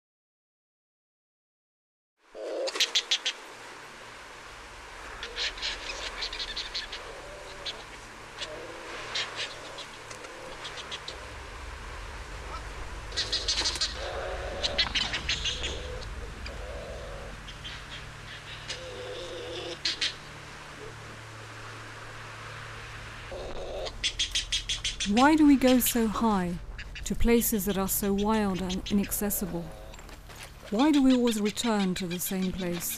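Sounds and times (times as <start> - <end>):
steady low rumble: 3.8 - 31.7.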